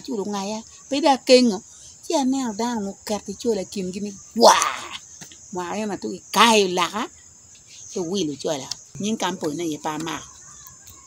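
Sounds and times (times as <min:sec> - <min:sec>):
woman speaking: 0:00.0 - 0:07.1, 0:07.9 - 0:10.4
high-pitched insect chorus: 0:00.0 - 0:11.0.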